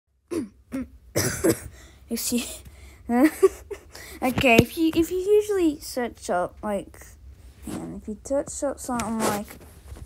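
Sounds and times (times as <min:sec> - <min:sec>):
person coughing: 0:00.3 - 0:01.9.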